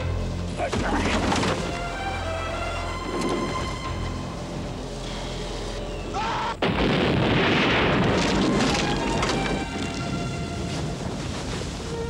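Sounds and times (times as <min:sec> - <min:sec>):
explosion with heavy rumble: 0:06.6 - 0:11.6.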